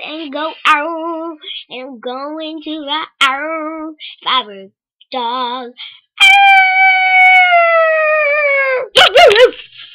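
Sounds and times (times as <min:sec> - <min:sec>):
girl howling like a dog: 0:06.2 - 0:09.0.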